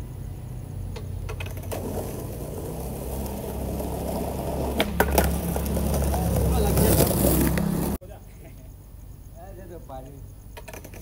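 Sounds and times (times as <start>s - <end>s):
skateboard wheels rolling on asphalt: 0.0s - 8.0s, 10.5s - 11.0s
skateboard clacks: 0.9s - 8.0s, 10.6s - 11.0s.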